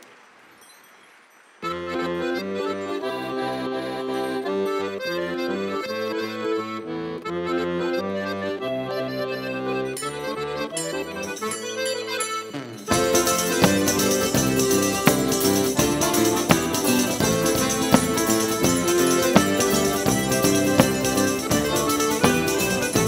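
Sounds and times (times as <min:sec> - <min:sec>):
button accordion melody: 0:01.6 - 0:23.0.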